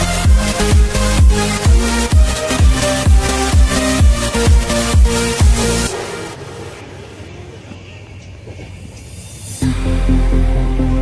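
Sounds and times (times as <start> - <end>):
train running rumble: 0.2 - 9.7.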